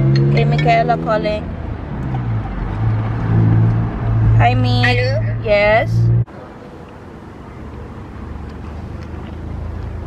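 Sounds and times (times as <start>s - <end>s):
distant traffic rumble: 0.0s - 10.0s.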